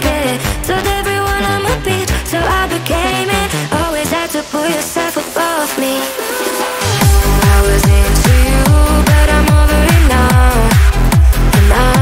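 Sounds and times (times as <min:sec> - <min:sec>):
heavy kick-drum beat: 0:06.4 - 0:12.0
held synth lead line: 0:06.8 - 0:12.0.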